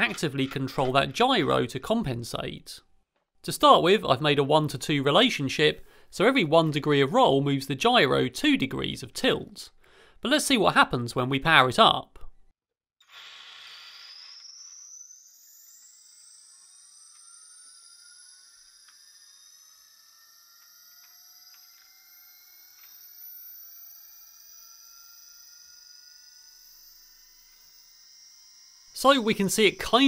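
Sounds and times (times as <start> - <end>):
motor whine climbing in pitch: 13.4 - 30.0.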